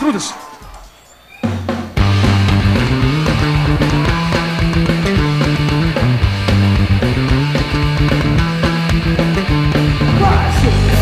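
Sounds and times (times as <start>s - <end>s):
fast drumbeat: 1.6s - 11.0s
bass guitar: 2.0s - 11.0s
distorted electric guitar: 2.0s - 11.0s.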